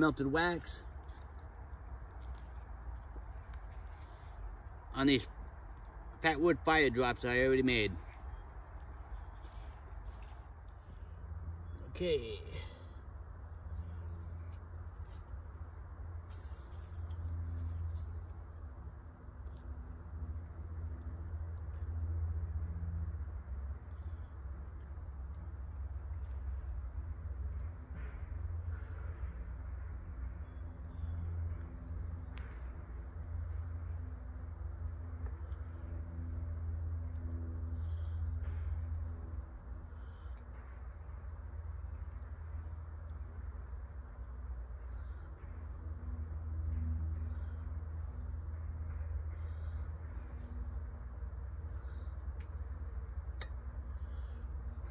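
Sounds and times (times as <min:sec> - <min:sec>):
low outdoor rumble: 0:00.0 - 0:54.9.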